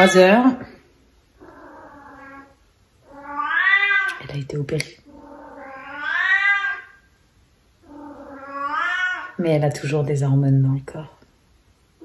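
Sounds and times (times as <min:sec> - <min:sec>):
cat meowing calls: 0:01.4 - 0:04.2, 0:05.1 - 0:07.0, 0:07.8 - 0:09.4.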